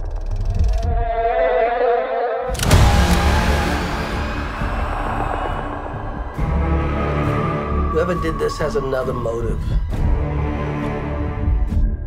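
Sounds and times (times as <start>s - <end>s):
low rumble: 2.5s - 10.5s.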